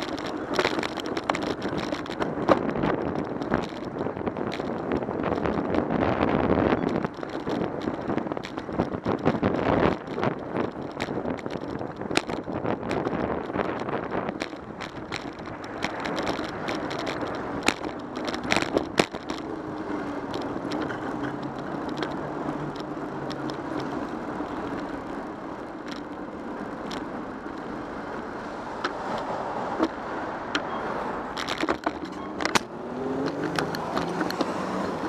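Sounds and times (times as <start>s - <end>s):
cars humming alongside: 0.0s - 35.0s
city traffic noise: 0.0s - 35.0s
clicks and knocks from road bumps: 0.0s - 35.0s.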